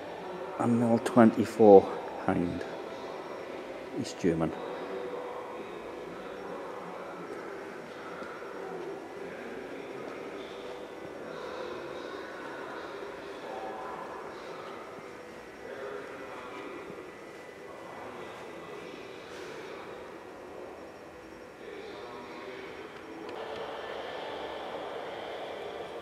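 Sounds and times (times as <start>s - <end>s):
hangar background hum: 0.0s - 26.0s.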